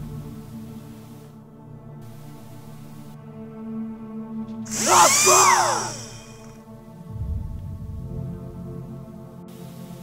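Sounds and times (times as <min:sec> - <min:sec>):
low music drone: 0:04.6 - 0:09.5
power drill whine: 0:04.7 - 0:06.5.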